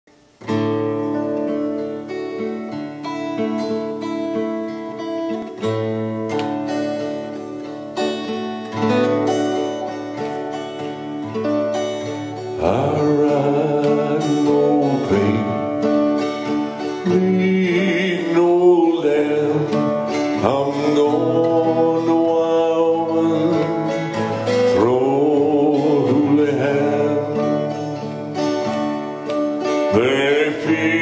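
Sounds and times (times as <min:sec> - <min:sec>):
acoustic guitar picked and strummed: 0:00.1 - 0:31.0
man singing: 0:12.4 - 0:28.5, 0:29.7 - 0:31.0.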